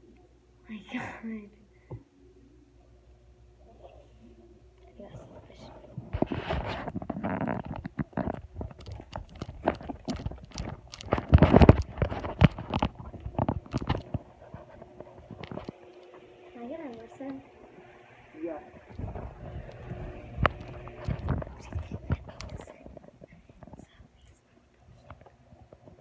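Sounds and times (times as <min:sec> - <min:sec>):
microphone rubbing and knocking: 0:05.2 - 0:15.8, 0:18.8 - 0:24.2.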